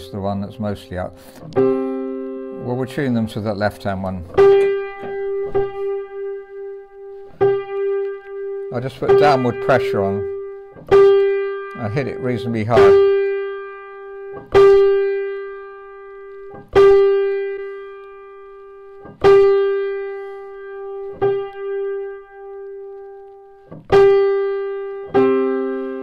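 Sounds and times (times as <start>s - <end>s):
piano note struck hard: 0.0s - 23.0s
lower piano note: 0.0s - 26.0s.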